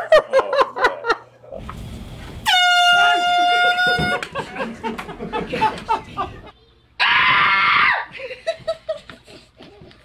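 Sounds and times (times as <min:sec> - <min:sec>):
air horn blasting: 0:02.4 - 0:04.2.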